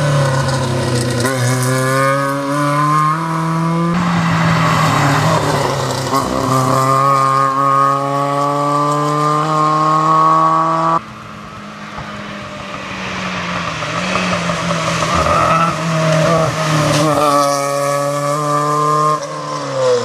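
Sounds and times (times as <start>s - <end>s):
rally car engine at high revs: 0.0s - 11.1s, 11.9s - 20.0s.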